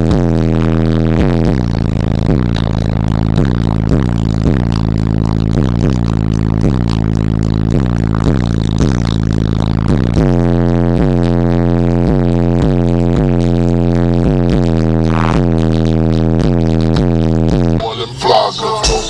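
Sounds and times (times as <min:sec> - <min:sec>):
loud bass-heavy music: 0:00.0 - 0:19.0.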